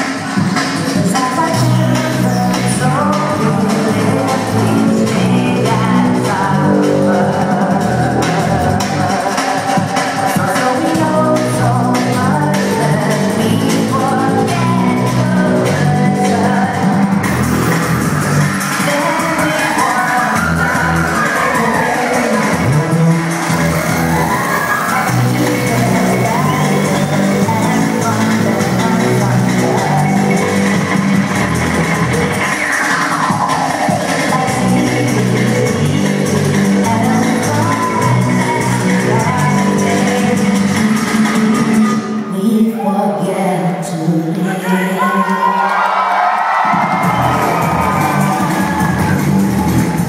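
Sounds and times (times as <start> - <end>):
live band music: 0.0 - 42.6, 46.7 - 50.0
synthesizer lines: 0.0 - 42.7
gliding vocals: 0.0 - 46.2
deep bass notes: 1.5 - 9.3, 10.9 - 32.6, 33.8 - 42.0, 46.6 - 50.0
crowd cheering: 16.6 - 35.6, 44.4 - 50.0.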